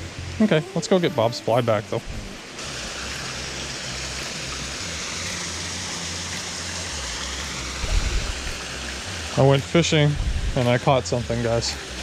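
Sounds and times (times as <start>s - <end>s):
waterfall and river water rushing: 0.0s - 12.0s.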